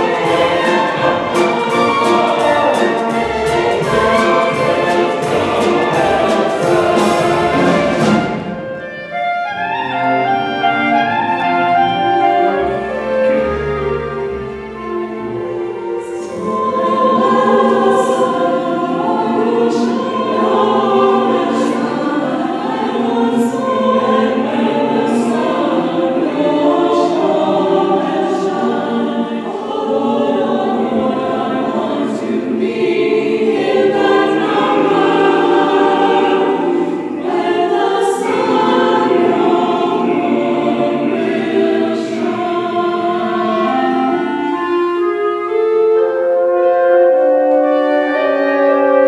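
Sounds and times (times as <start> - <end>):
mixed choir singing: 0.0 - 49.0
orchestral accompaniment: 0.0 - 49.0.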